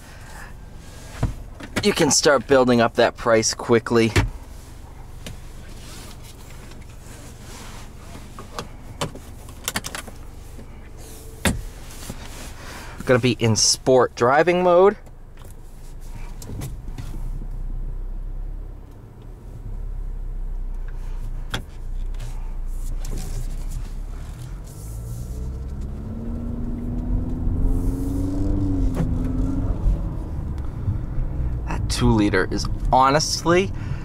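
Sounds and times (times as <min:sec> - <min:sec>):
car engine and road hum: 0:00.0 - 0:34.0.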